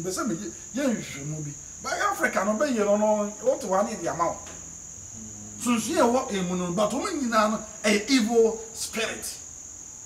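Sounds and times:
man talking: 0:00.0 - 0:04.4, 0:05.2 - 0:09.4
steady high-pitched tone: 0:05.0 - 0:07.6.

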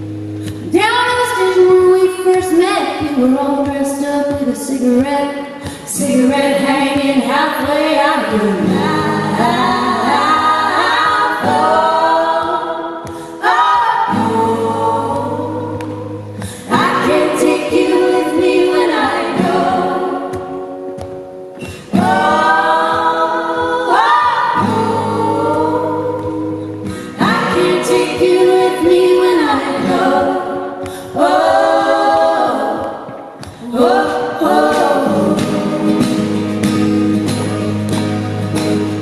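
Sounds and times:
acoustic guitar: 0:00.0 - 0:39.0
women singing close harmony: 0:00.7 - 0:20.9, 0:21.6 - 0:36.6.

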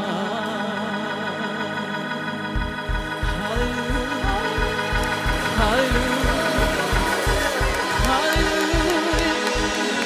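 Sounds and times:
person singing: 0:00.0 - 0:10.0
sustained organ chords: 0:00.0 - 0:10.0
steady low beat: 0:01.0 - 0:10.0.

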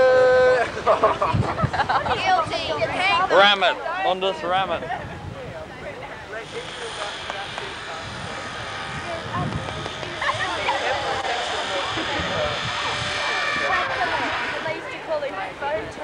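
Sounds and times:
engine drone: 0:00.0 - 0:01.3, 0:06.2 - 0:15.7
group of people chatting: 0:00.0 - 0:16.0.

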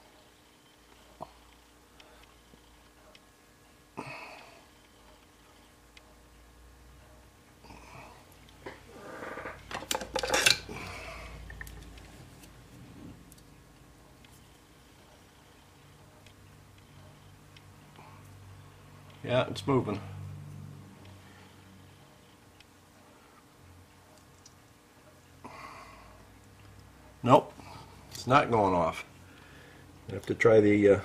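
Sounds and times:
faint room sound: 0:00.0 - 0:31.0.

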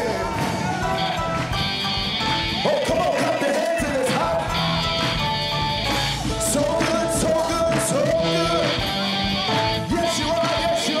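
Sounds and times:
man singing and shouting: 0:00.0 - 0:01.2, 0:02.6 - 0:04.8, 0:06.2 - 0:11.0
gospel band playing: 0:00.0 - 0:11.0.

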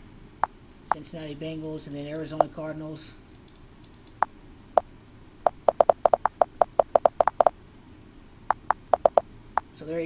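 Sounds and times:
typing on computer keyboard: 0:05.6 - 0:07.5, 0:08.5 - 0:09.2.

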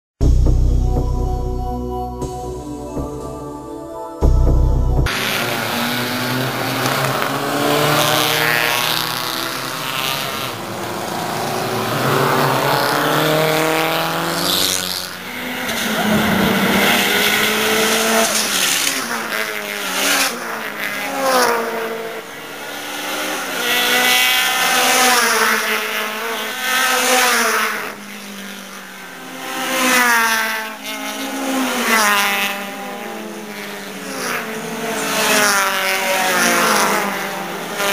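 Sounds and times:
race car engines passing: 0:05.1 - 0:37.9.

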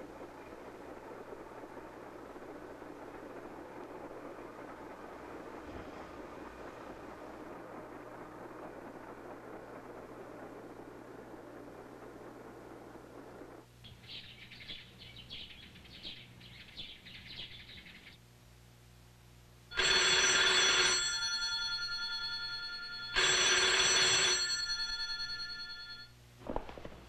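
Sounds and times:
telephone bell ringing: 0:19.7 - 0:26.2.

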